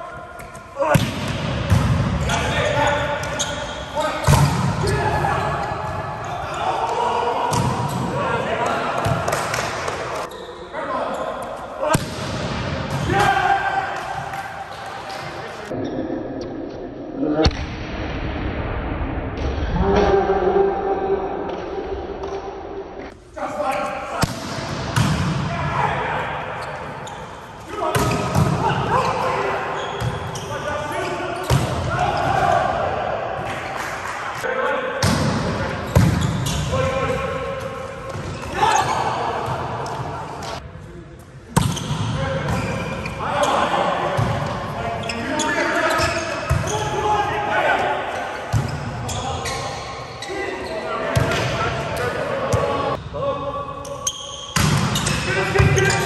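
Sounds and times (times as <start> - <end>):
players shouting and chatting: 0.0 - 16.0, 19.8 - 56.0.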